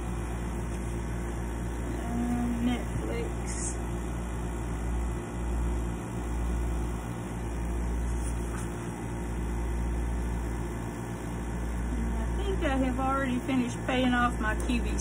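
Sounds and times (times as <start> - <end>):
low hum: 0.0 - 9.9.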